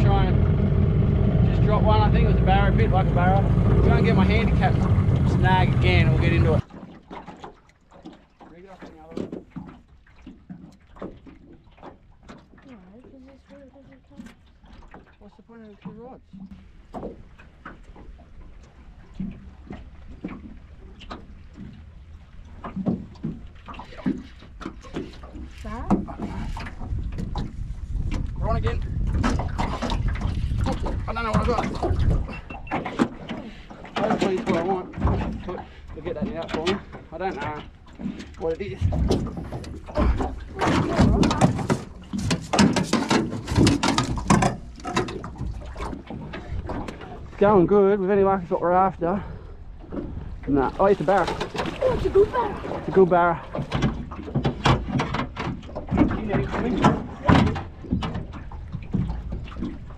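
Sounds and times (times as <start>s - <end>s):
steady low rumble: 0.0s - 6.7s.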